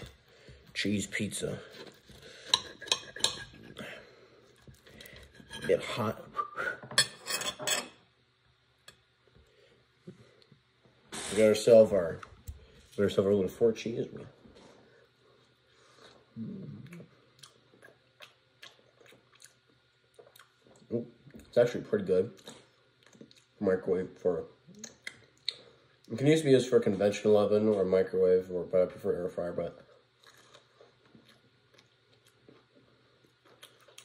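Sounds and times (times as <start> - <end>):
person chewing crunchy food: 15.9 - 20.9, 30.1 - 34.0.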